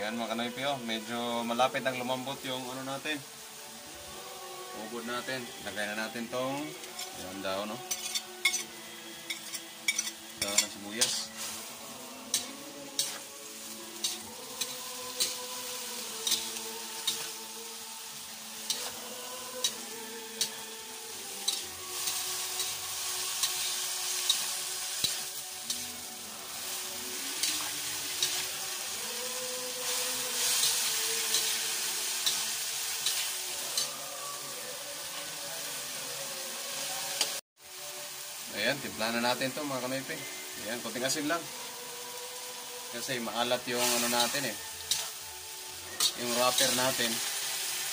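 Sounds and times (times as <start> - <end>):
frying sizzle: 0.0 - 47.9
spatula scraping a wok: 6.7 - 34.4, 43.6 - 47.9.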